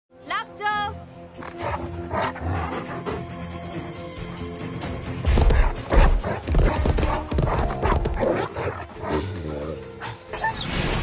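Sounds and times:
dramatic score music: 0.2s - 11.0s.

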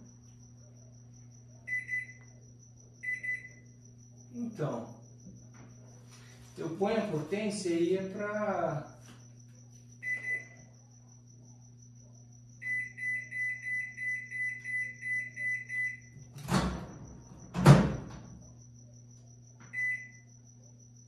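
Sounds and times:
faint steady hum: 0.0s - 21.0s
microwave keypad beeps: 1.7s - 2.2s, 3.0s - 3.6s, 10.0s - 10.6s, 12.6s - 16.2s, 19.7s - 20.3s.

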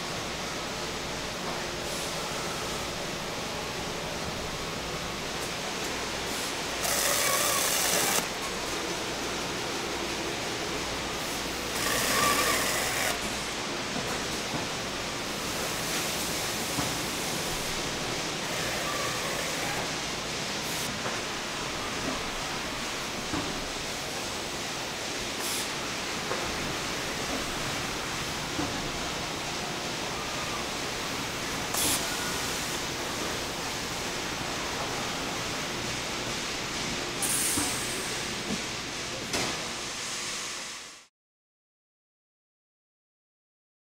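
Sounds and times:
packing machine running: 5.4s - 14.5s, 15.3s - 20.8s
loud bursts of machine noise: 6.2s - 13.6s.

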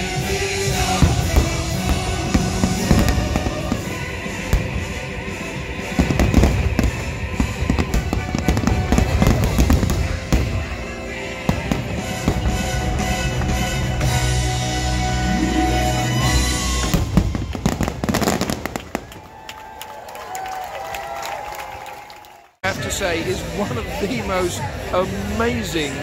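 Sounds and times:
fireworks bangs and crackles: 0.0s - 14.8s, 16.2s - 19.5s
loud musical soundtrack: 0.0s - 18.5s.

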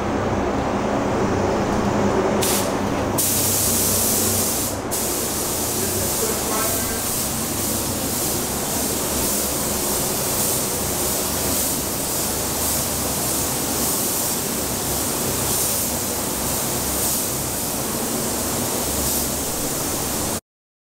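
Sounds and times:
paint spray gun hissing: 2.4s - 20.4s.

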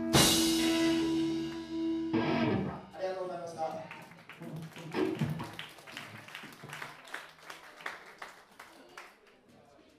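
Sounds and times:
live band chord ringing: 0.0s - 3.0s
audience clapping: 3.6s - 9.7s.

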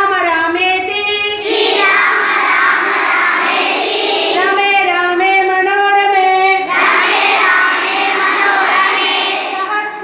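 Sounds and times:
children chanting in unison: 1.3s - 4.6s, 6.6s - 9.7s.

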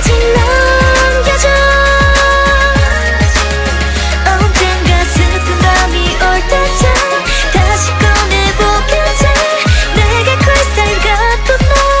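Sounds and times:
pop song with female vocals: 0.0s - 12.0s.

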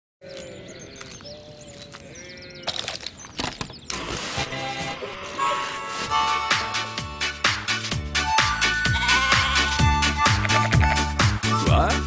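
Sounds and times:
birdsong: 0.2s - 6.9s
sheep bleating: 8.8s - 9.9s.

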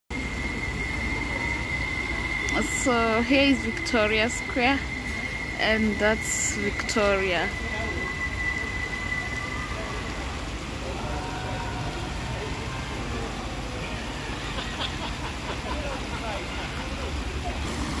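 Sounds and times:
distant traffic rumble: 0.1s - 18.0s
faint voices: 0.1s - 18.0s.

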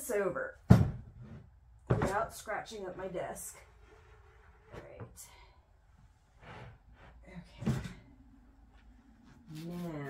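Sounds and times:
woman speaking: 2.0s - 3.6s, 9.5s - 10.0s.

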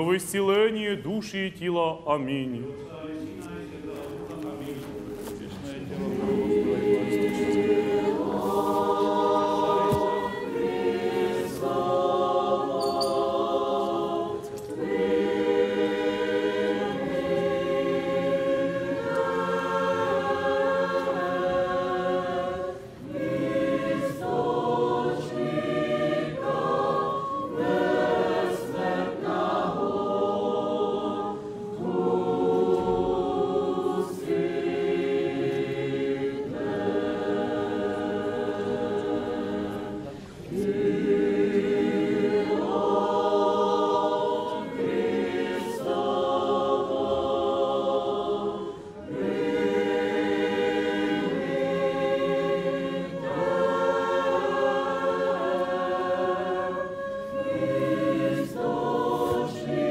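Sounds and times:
choir singing liturgical chant: 0.0s - 59.9s
singers breathing: 40.0s - 40.5s.

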